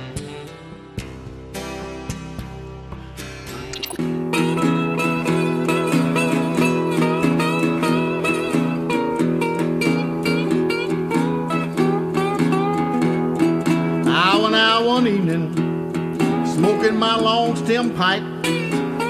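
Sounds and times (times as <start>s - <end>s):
country music with acoustic guitar: 0.0s - 19.0s.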